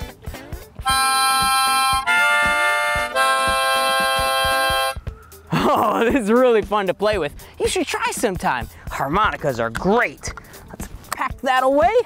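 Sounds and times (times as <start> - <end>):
harmonica chords: 0.0 - 5.7.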